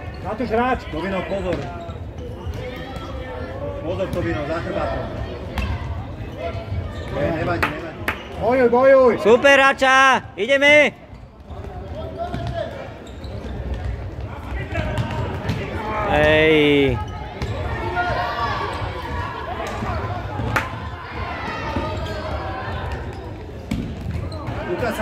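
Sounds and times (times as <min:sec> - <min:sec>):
murmur of spectators: 0:00.0 - 0:25.0.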